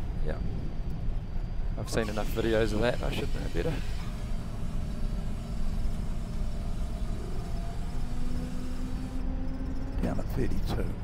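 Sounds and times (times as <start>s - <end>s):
propeller plane engines idling: 0.0s - 9.2s.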